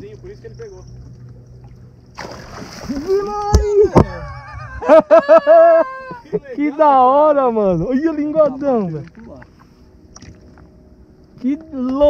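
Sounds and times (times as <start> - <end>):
faint steady hum: 0.0 - 12.0
water washing around boat: 0.9 - 3.9.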